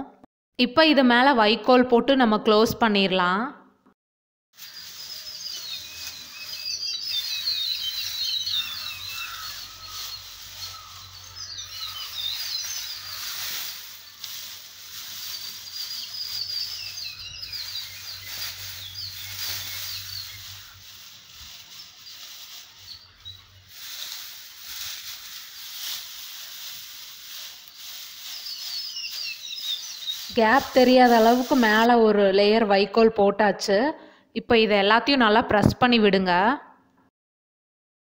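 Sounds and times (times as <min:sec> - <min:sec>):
birds chirping: 0:04.6 - 0:31.9
straw rustling: 0:04.6 - 0:31.9.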